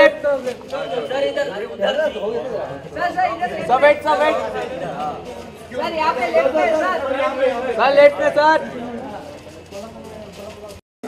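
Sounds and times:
crowd chatter: 0.0 - 10.8.

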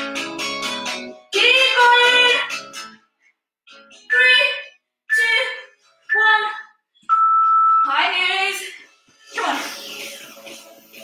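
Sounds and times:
background music with voice: 0.0 - 3.0, 3.7 - 6.9, 7.8 - 11.0
steady electronic beep: 7.1 - 8.0.

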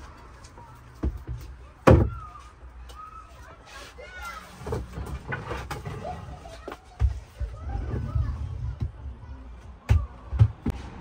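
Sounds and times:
low indistinct voices: 0.0 - 11.0.

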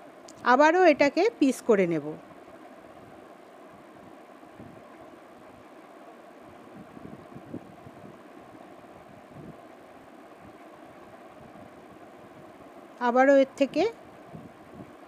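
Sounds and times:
faint background hum: 0.0 - 15.0.

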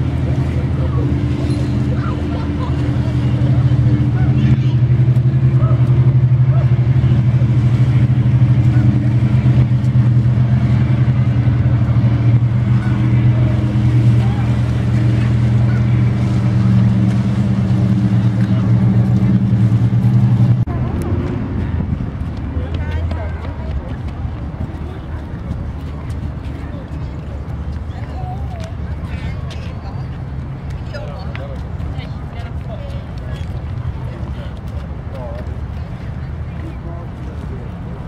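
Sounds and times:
engine humming steadily: 0.0 - 38.0.

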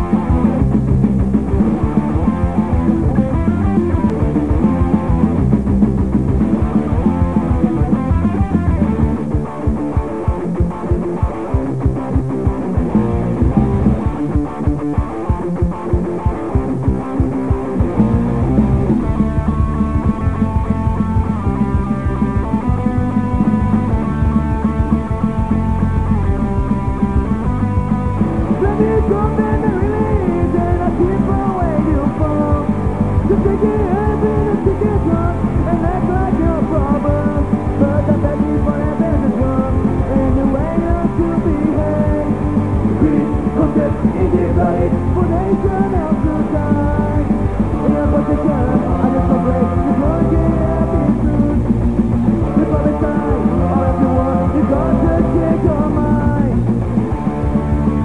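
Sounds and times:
held guitar notes ringing: 0.0 - 58.0
punk band playing: 0.0 - 58.0.

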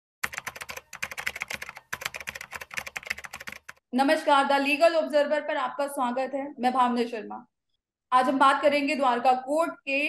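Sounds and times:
rapid sharp clicks: 0.2 - 3.8.

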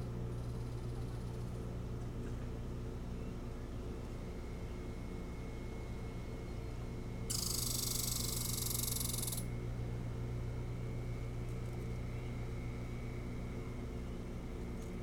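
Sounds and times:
low hum with thin whine: 0.0 - 15.0.

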